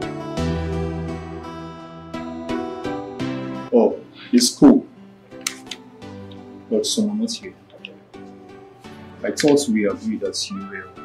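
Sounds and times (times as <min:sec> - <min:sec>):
soft film music: 0:00.0 - 0:11.0
brief clicks: 0:05.4 - 0:06.4
person speaking: 0:09.2 - 0:11.0.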